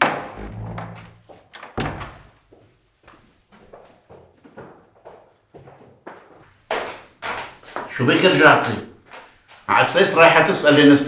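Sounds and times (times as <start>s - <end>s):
wooden door shutting: 0.0s - 2.4s.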